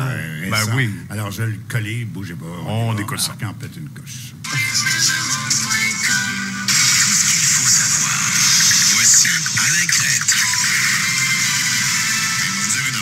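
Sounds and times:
radio hiss and static: 2.6s - 13.0s.

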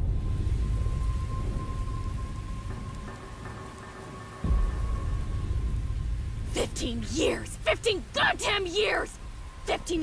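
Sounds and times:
heavy rain falling: 0.0s - 10.0s
thunder rumbling: 0.0s - 10.0s.

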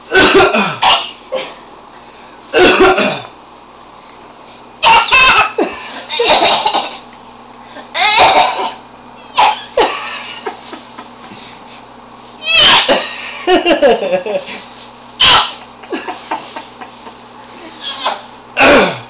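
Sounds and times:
baby fake coughing: 0.1s - 1.6s, 2.6s - 3.3s, 4.8s - 7.0s, 8.0s - 10.0s, 12.5s - 13.1s, 15.2s - 15.6s.

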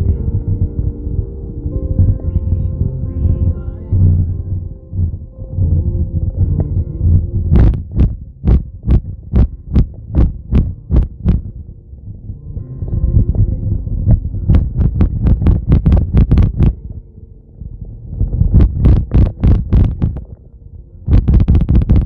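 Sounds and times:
car road rumble: 0.0s - 22.0s.

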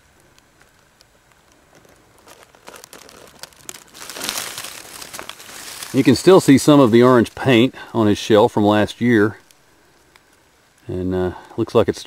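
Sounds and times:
dry leaves and twigs rustling: 0.0s - 12.0s.

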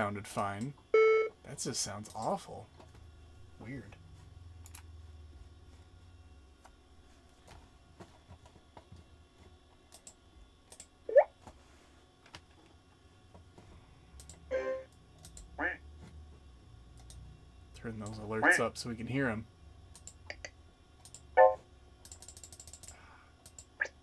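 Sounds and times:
computer alert sounds: 18.4s - 18.7s.

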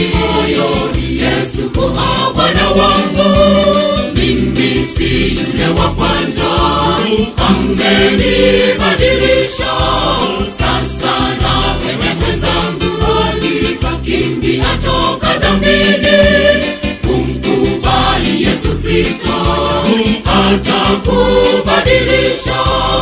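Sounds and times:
choir singing gospel song: 0.0s - 23.0s
steady bass beat: 0.0s - 23.0s.

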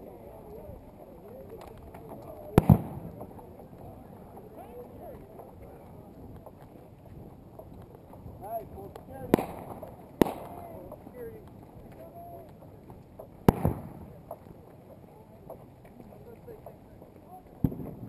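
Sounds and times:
faint distant voices: 0.0s - 18.0s.

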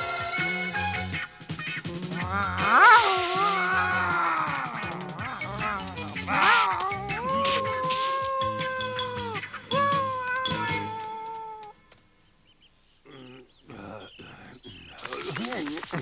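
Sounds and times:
cartoon fox howling: 1.9s - 11.8s.

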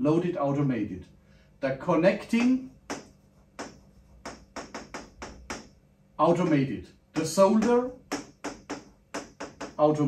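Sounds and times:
pen tapping on whiteboard screen: 2.2s - 5.8s, 7.2s - 9.8s.

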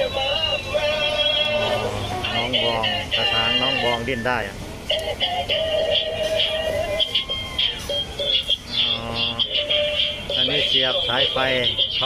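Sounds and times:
electronic song from toy speaker: 0.0s - 4.2s, 4.9s - 12.0s.

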